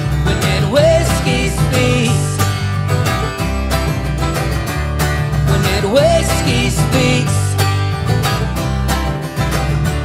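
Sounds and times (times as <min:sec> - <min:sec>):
acoustic guitar: 0:00.0 - 0:10.0
banjo picking: 0:00.0 - 0:10.0
bass line: 0:00.0 - 0:10.0.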